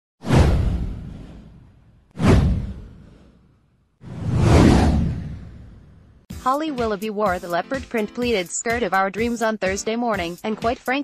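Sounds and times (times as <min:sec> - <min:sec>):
downward swoosh: 0:04.0 - 0:06.0
deep low rumble: 0:04.1 - 0:06.2.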